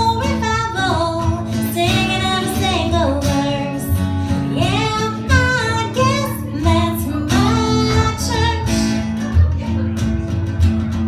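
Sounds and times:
woman singing country song: 0:00.0 - 0:10.3
strummed acoustic guitar: 0:00.0 - 0:11.0.

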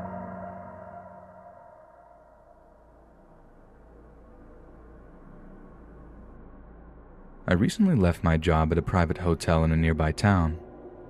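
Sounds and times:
deep gong-like ringing tone: 0:00.0 - 0:05.9
low hum: 0:00.0 - 0:11.0.

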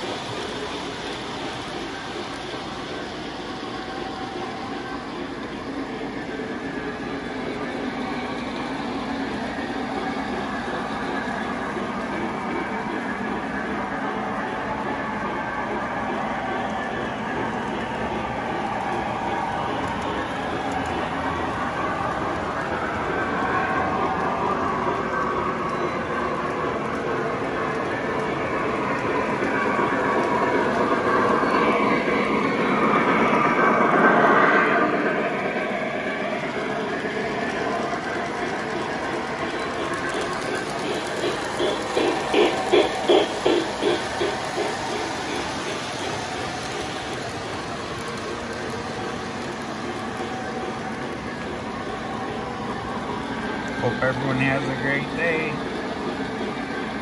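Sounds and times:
model train wheels clattering on rails: 0:15.2 - 0:34.2, 0:36.1 - 0:57.0.

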